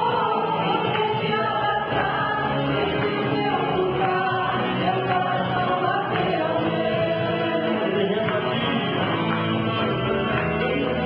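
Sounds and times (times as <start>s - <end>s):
group singing worship song: 0.0s - 9.3s, 10.2s - 11.0s
band accompaniment: 0.0s - 11.0s.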